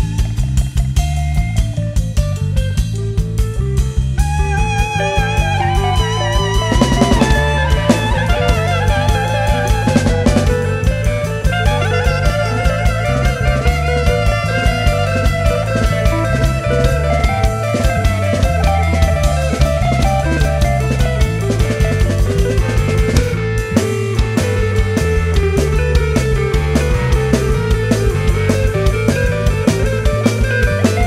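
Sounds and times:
drum kit: 0:00.0 - 0:31.0
electric guitar: 0:00.0 - 0:31.0
stepping bass line: 0:00.0 - 0:31.0
wavering lead melody: 0:01.2 - 0:31.0.

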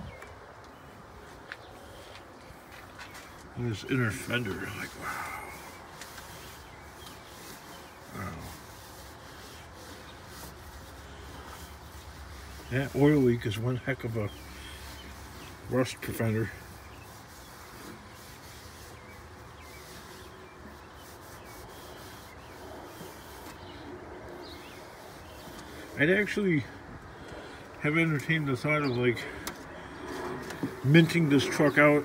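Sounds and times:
cloth rag scrubbing: 0:02.6 - 0:26.8.

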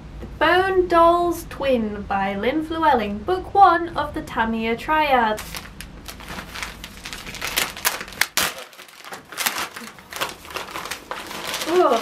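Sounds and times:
padded envelope crinkling: 0:05.4 - 0:12.0.

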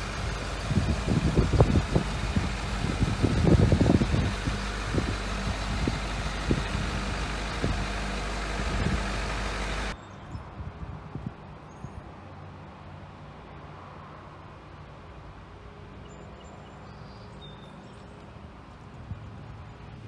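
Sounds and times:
diesel engine idling: 0:00.0 - 0:10.0
wind buffeting microphone: 0:00.0 - 0:11.5.

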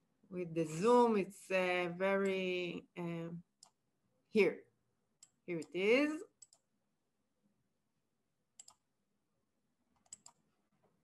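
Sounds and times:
faint computer clicks: 0:08.6 - 0:08.8, 0:10.0 - 0:10.4.

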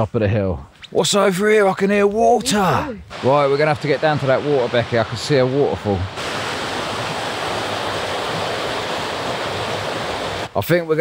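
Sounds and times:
small waterfall rushing: 0:02.5 - 0:10.5
stream cascading over rocks: 0:02.5 - 0:10.5.

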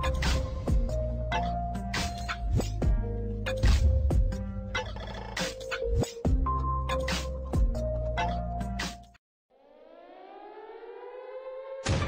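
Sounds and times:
electronic music: 0:00.0 - 0:09.1
rising synthesized tone: 0:09.5 - 0:11.9.

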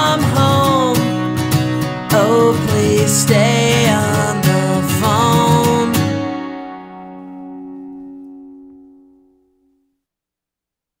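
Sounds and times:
acoustic guitar strum ringing: 0:00.0 - 0:09.6.

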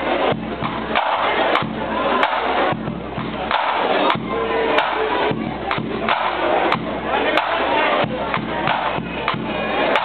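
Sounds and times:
drum strikes: 0:00.0 - 0:10.0.

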